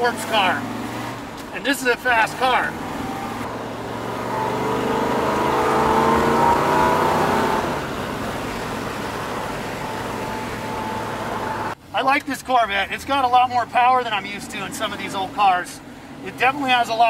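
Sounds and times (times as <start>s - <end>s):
car engine accelerating: 0.0s - 11.8s.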